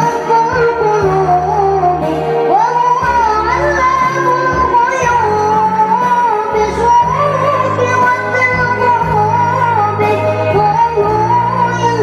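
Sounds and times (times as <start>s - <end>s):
musical accompaniment: 0.0s - 12.0s
young woman singing: 0.0s - 12.0s.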